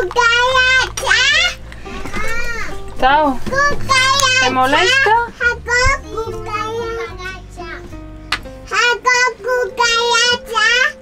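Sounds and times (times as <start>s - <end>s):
child singing in high voice: 3.4s - 4.4s, 5.4s - 7.8s, 8.7s - 11.0s.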